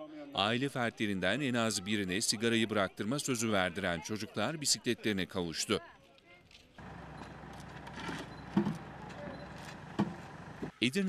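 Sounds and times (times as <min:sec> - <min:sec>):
outdoor street background noise: 0:00.0 - 0:11.0
man narrating: 0:00.3 - 0:05.8, 0:10.8 - 0:11.0
wooden boards knocking: 0:09.8 - 0:10.4.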